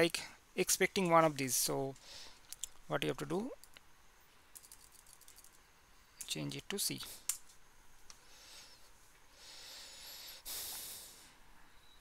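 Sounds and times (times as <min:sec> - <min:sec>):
person breathing: 0:02.0 - 0:02.4, 0:08.2 - 0:11.4.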